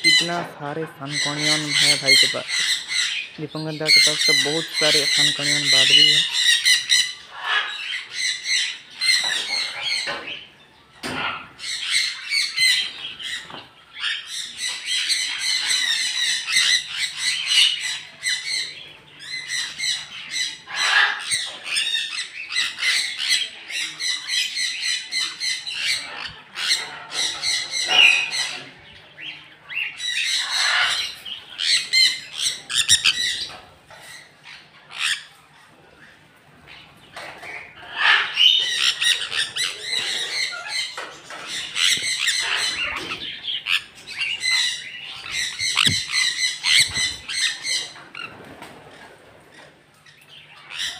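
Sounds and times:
parrots screeching: 0.0s - 35.7s, 36.7s - 50.9s.

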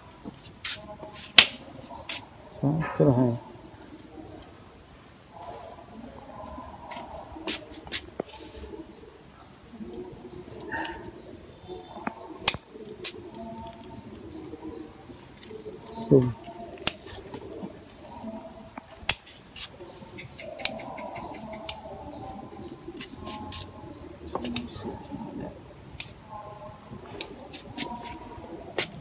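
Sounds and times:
faint background voices: 0.0s - 29.0s.

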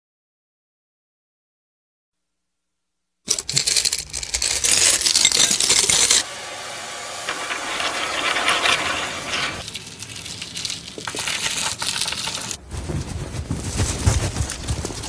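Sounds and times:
metal coins clattering: 3.3s - 6.2s, 7.3s - 15.0s.

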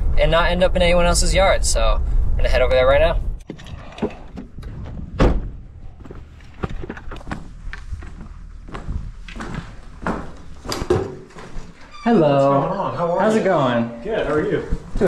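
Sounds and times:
car door shutting: 3.4s - 6.8s
footsteps on pavers: 5.8s - 11.8s.

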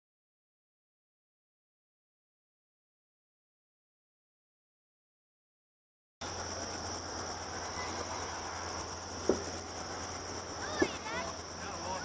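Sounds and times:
crickets chirping: 6.2s - 12.0s.

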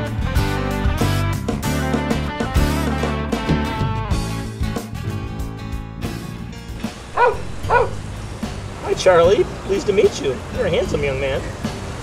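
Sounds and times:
dog yipping: 7.1s - 8.1s.

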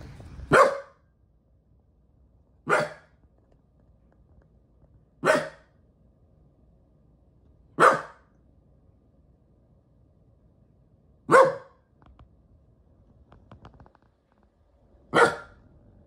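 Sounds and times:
small dog barking sharply: 0.5s - 1.0s, 2.7s - 3.1s, 5.2s - 5.7s, 7.8s - 8.2s, 11.3s - 11.8s, 15.1s - 15.6s.

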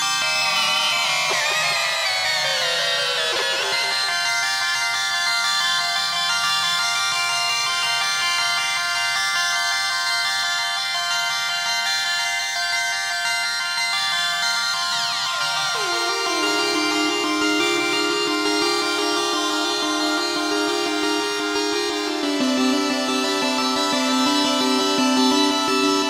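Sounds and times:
synthesizer drone of high tones: 15.7s - 26.0s
synthesizer pitch glides: 15.7s - 26.0s.

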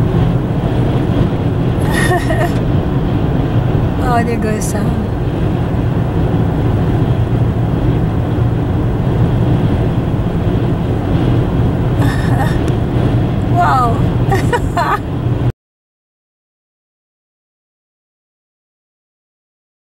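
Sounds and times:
car driving at highway speed: 0.0s - 15.5s.

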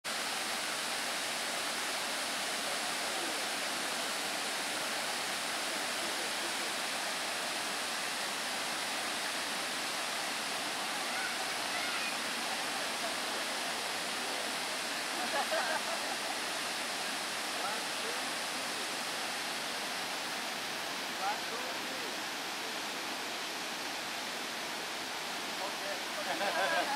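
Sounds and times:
waterfall rushing: 0.1s - 26.9s.

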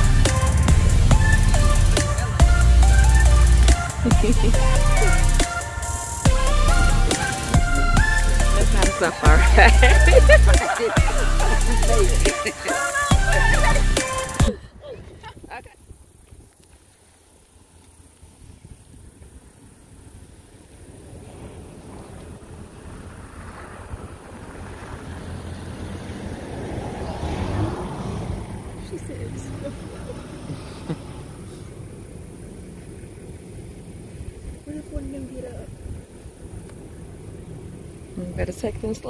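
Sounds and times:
vehicle passing: 0.0s - 14.8s, 20.8s - 39.0s.

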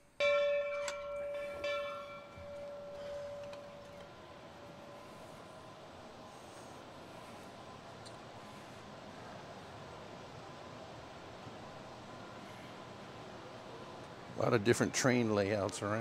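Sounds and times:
metal bell ringing: 0.2s - 4.0s.

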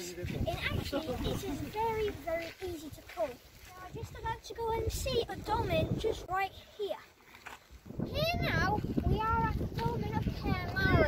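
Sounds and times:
outdoor background noise: 0.0s - 11.0s
boy speaking: 0.4s - 7.2s, 8.0s - 11.0s.

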